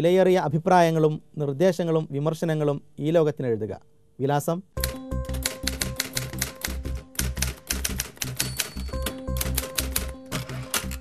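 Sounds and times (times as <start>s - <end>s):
typewriter key clicks: 4.8s - 11.0s.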